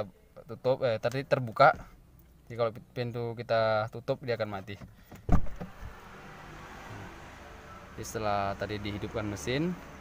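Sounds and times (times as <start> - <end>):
car door shutting: 4.8 - 6.0.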